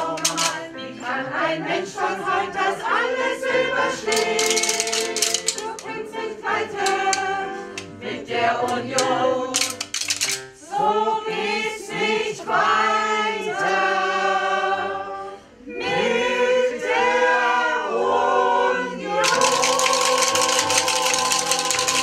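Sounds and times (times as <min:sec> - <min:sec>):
mixed choir singing: 0:00.0 - 0:10.0, 0:10.6 - 0:22.0
audience clapping: 0:04.1 - 0:05.8, 0:19.2 - 0:22.0.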